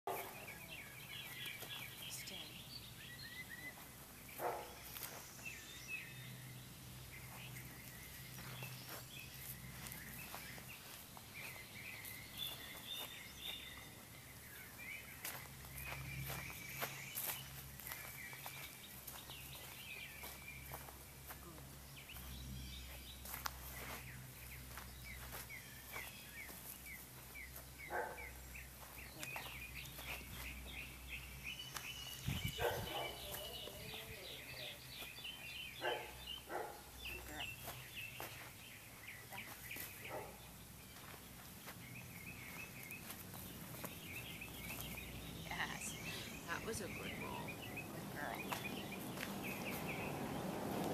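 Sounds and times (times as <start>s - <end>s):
footsteps on grass and dirt: 0.0s - 50.9s
songbirds chirping and trilling: 0.0s - 50.9s.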